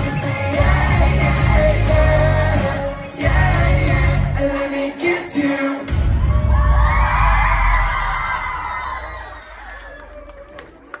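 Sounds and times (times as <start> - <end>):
live pop music: 0.0 - 7.3
crowd cheering and screaming: 5.3 - 11.0.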